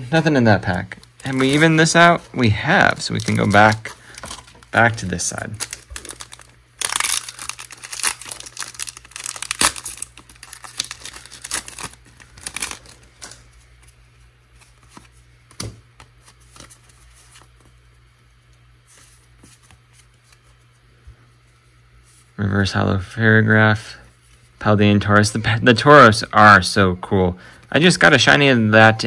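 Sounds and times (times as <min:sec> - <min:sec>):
foil pack tearing and crinkling: 0:00.9 - 0:02.1, 0:02.9 - 0:13.5.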